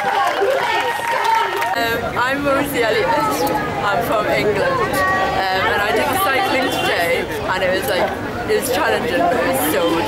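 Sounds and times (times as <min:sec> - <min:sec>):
people talking: 0:00.4 - 0:10.0.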